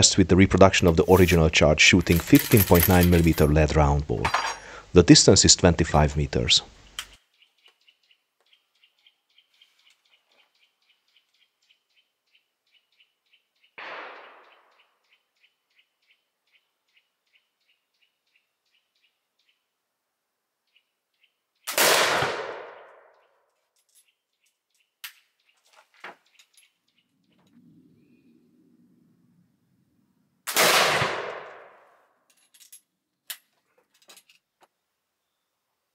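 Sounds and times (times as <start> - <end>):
bird chirping: 6.7 - 19.8, 20.5 - 21.7, 23.1 - 30.4, 34.7 - 35.7
flintlock gunshot ringing: 13.8 - 14.7, 21.7 - 23.0, 30.5 - 31.8.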